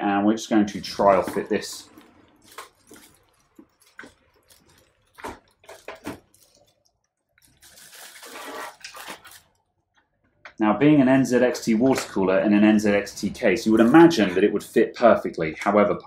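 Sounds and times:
plastic wrapping crinkling: 0.7 - 9.8.

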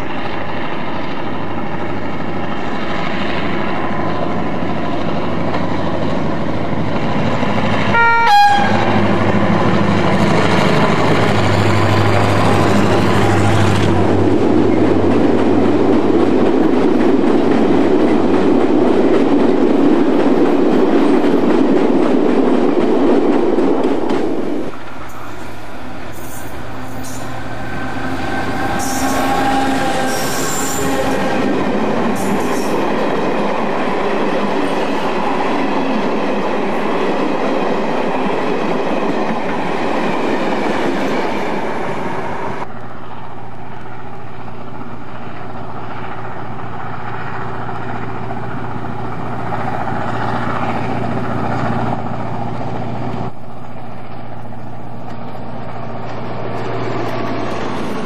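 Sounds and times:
freight train wheels rumbling: 0.0 - 58.0
passenger train passing: 0.0 - 58.0
high-pitched wheel squeals: 27.9 - 31.4.

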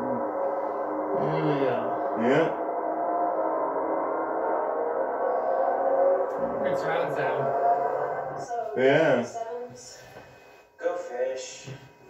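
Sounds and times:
sustained ringing tone: 0.0 - 10.0.

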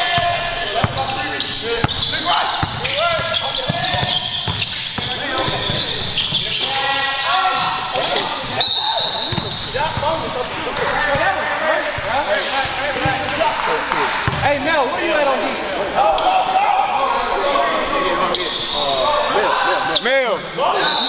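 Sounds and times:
sneakers squeaking: 0.0 - 14.6, 18.2 - 20.9
voices echoing in a hall: 0.0 - 21.0.

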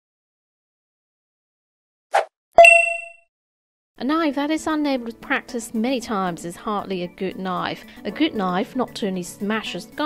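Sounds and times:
sharp metallic ding: 2.6 - 3.2.

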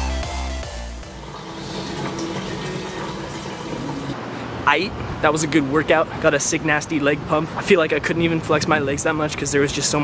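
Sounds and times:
electronic dance music: 0.0 - 2.0
water filling a plastic bottle: 1.2 - 4.2.

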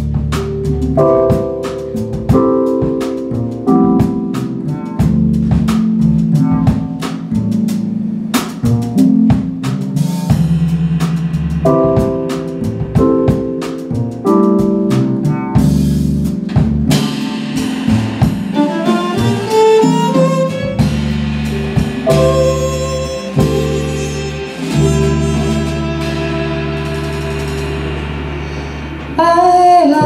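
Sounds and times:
small jazz band playing: 0.0 - 30.0
held note with vibrato: 18.5 - 30.0.

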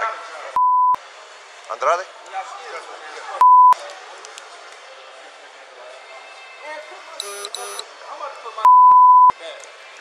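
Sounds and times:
electronic censor bleep: 0.6 - 1.0, 7.2 - 7.8, 8.7 - 9.3.

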